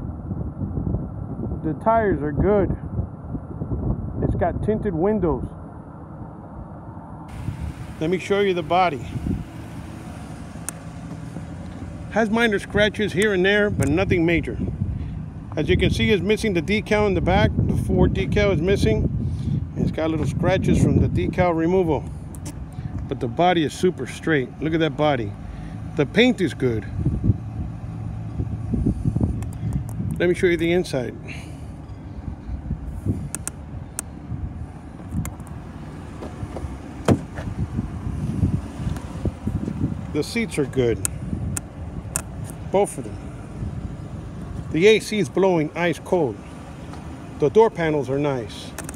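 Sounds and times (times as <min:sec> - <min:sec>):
car engine idling: 0:05.6 - 0:48.9
footsteps on asphalt: 0:07.3 - 0:13.2, 0:34.8 - 0:44.8, 0:46.4 - 0:47.4
car door unlatching click: 0:36.2 - 0:37.5.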